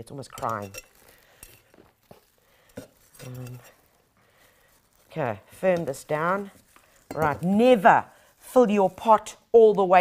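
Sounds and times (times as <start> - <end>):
trowel scraping potting soil: 0.1 - 4.1, 4.8 - 9.3.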